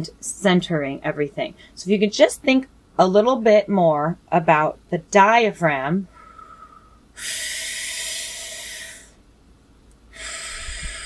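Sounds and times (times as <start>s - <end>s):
breath blown through pursed lips: 6.1s - 9.2s, 10.1s - 11.0s
woman breathing: 6.1s - 9.2s, 10.1s - 11.0s.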